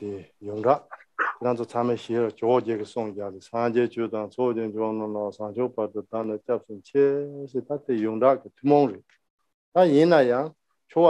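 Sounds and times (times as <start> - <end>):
man talking: 0.0 - 9.0, 9.8 - 11.0.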